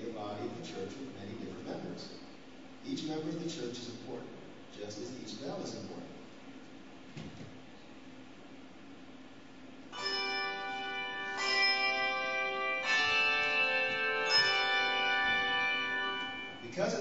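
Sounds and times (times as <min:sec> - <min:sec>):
handbell choir ringing chords: 0:09.9 - 0:16.8.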